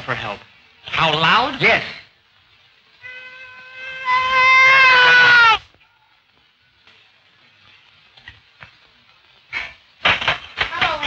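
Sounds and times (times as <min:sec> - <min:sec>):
man's high-pitched holler: 0:03.6 - 0:05.6.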